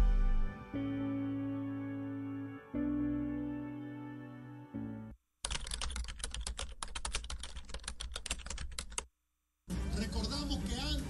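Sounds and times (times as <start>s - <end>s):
fast typing on keyboard: 5.4s - 9.1s.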